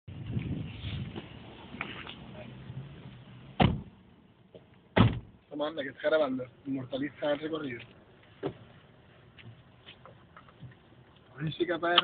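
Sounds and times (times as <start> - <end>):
car doors slamming: 3.6 - 4.0, 4.6 - 5.4.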